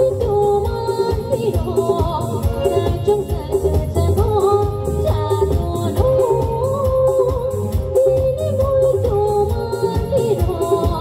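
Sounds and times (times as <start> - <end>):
drums: 0.0 - 11.0
woman singing into a microphone: 0.0 - 11.0.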